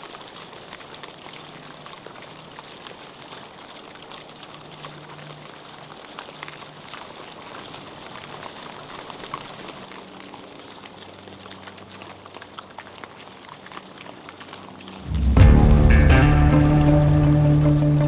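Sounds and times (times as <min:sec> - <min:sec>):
hogs crunching and rooting: 0:00.0 - 0:18.0.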